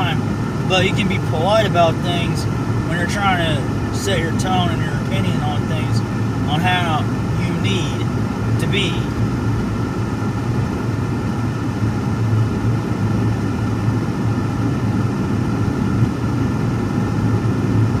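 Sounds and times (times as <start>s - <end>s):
car road and engine noise: 0.0s - 18.0s.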